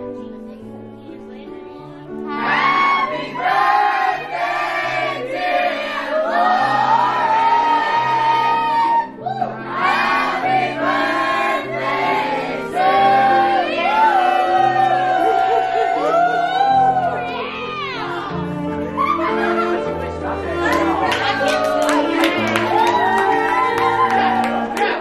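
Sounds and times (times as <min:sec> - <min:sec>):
group of voices singing: 0:02.0 - 0:17.3.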